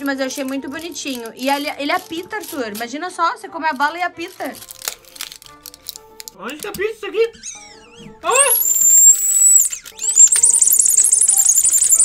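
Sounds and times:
shrill warbling whistle: 7.4s - 12.0s.

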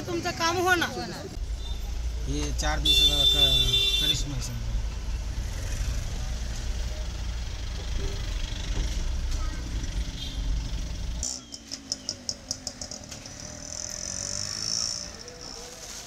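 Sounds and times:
car driving rumble: 0.0s - 15.8s
broom sweeping street: 15.3s - 16.0s.

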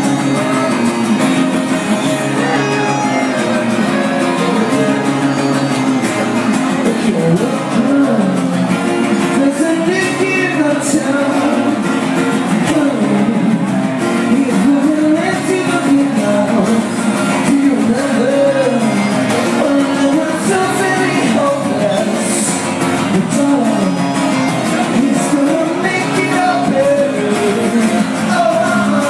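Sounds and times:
man singing: 0.0s - 29.0s
strummed acoustic guitar: 0.0s - 29.0s.

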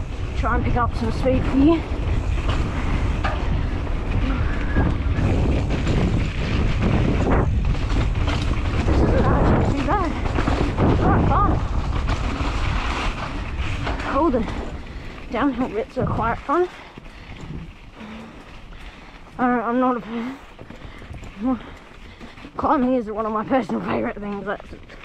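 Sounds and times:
bike knocking over bumps: 0.0s - 24.3s
tyres rumbling on dirt: 0.0s - 25.0s
wind buffeting microphone: 0.0s - 25.0s.

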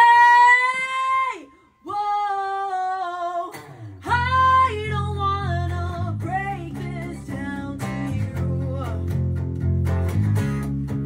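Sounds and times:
woman singing unaccompanied: 0.0s - 9.2s.

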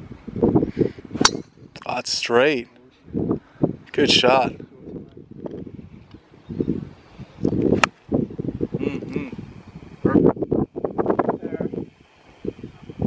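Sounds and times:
golf club striking ball: 1.2s - 1.9s
low voices: 8.7s - 10.2s.

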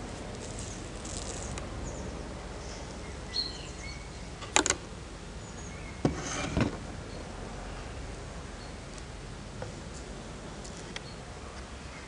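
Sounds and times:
steady background noise: 0.0s - 12.0s
bird chirping faintly: 0.6s - 4.3s.

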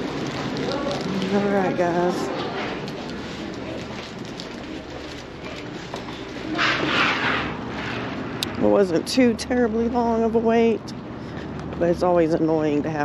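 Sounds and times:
footsteps walking: 0.0s - 8.3s.

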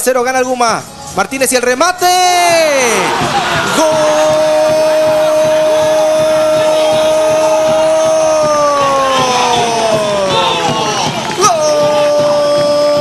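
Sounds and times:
commentator's drawn-out goal cry: 2.1s - 13.0s.

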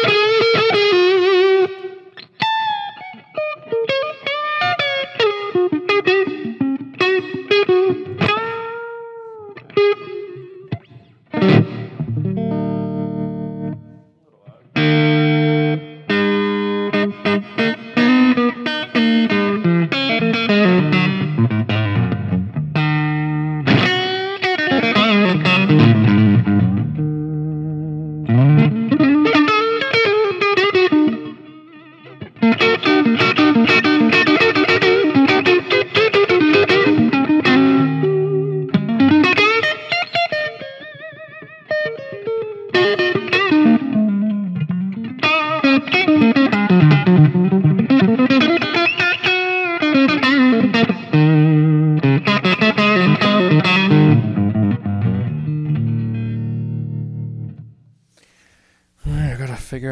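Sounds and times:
distorted electric guitar riffs: 0.0s - 57.5s.

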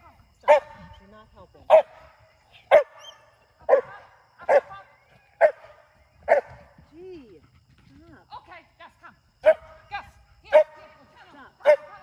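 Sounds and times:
dog barking: 1.7s - 2.0s, 2.7s - 3.9s, 6.3s - 6.6s, 9.4s - 9.7s, 11.6s - 12.0s.

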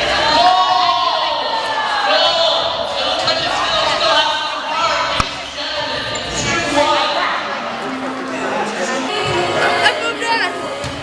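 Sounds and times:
players' voices: 0.0s - 11.0s.

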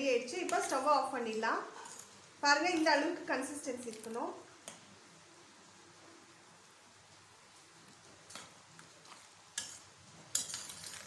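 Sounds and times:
spoon stirring thick gravy: 7.6s - 11.0s.

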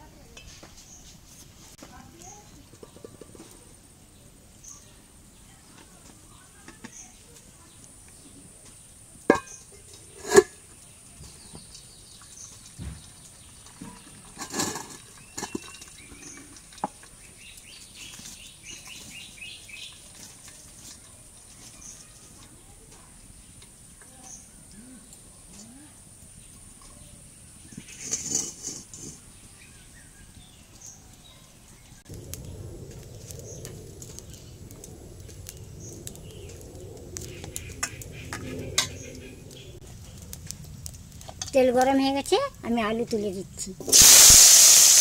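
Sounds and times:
birds chirping: 2.1s - 20.2s, 26.2s - 40.6s
metal pots clanking together: 9.3s - 10.6s, 13.6s - 17.2s.

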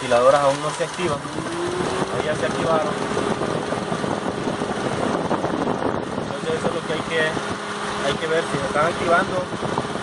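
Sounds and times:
car engine idling: 0.0s - 10.0s
radiator cooling fans running: 0.0s - 10.0s.

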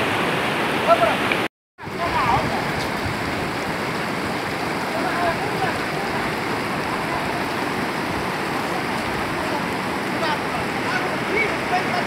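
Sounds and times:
river rushing over rocks: 0.0s - 12.0s.

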